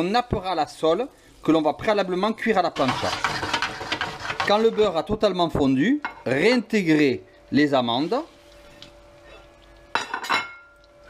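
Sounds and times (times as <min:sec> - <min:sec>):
ceramic plate clinking on cookware: 0:10.0 - 0:10.7.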